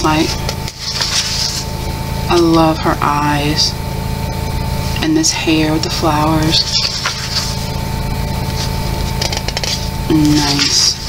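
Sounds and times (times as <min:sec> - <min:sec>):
steady background hum: 0:00.0 - 0:11.0
paper page turning: 0:00.2 - 0:01.7, 0:06.4 - 0:07.8, 0:08.4 - 0:11.0.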